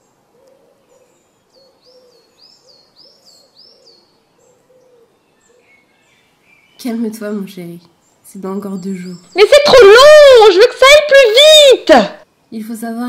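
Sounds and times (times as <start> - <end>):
soft low hooting birdsong: 0.0 - 10.7.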